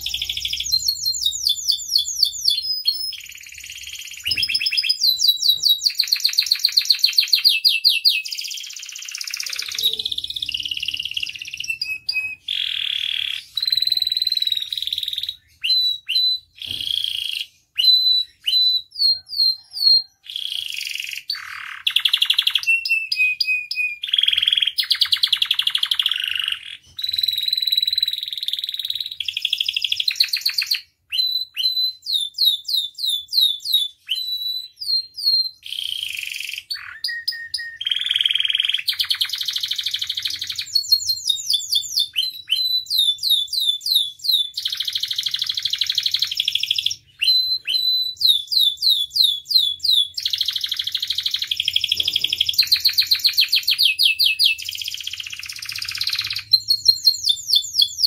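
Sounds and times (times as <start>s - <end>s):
canary singing trills: 0.0s - 58.0s.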